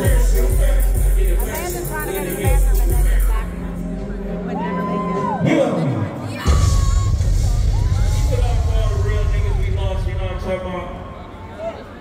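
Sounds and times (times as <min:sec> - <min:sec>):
rapping over a loud beat: 0:00.0 - 0:04.2
crowd noise: 0:00.0 - 0:12.0.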